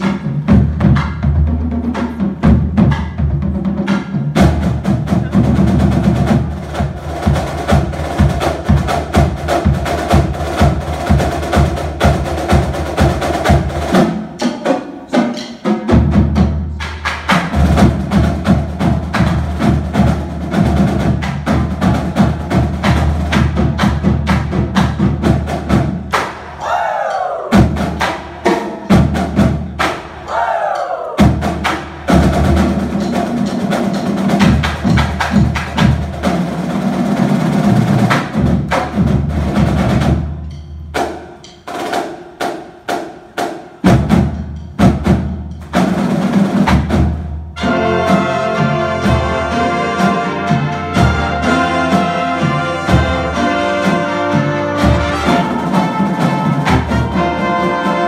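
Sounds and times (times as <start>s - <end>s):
concert band playing: 0.0s - 58.0s
percussion strokes: 16.7s - 58.0s.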